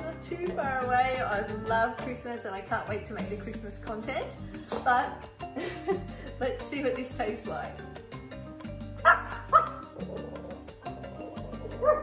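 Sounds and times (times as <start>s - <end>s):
background music: 0.0s - 12.0s
small dog yipping: 9.0s - 9.9s, 11.8s - 12.0s.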